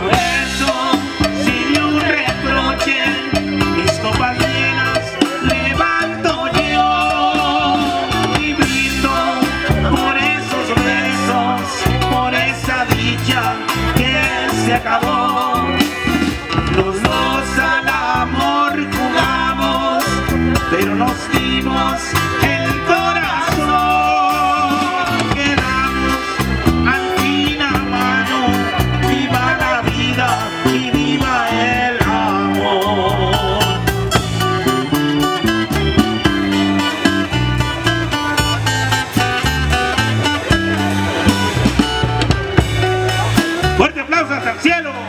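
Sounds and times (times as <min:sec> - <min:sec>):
live band playing a ballad: 0:00.0 - 0:45.0.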